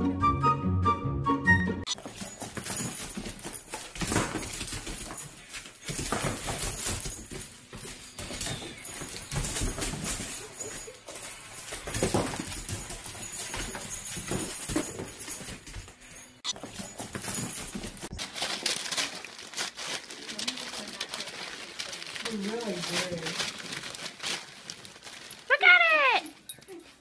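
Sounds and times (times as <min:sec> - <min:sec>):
wrapping paper rustling and tearing: 0:16.5 - 0:26.5.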